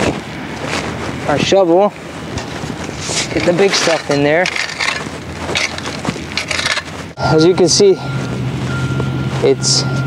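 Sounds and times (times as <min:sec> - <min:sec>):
shovel scraping soil and gravel: 0:02.4 - 0:07.2.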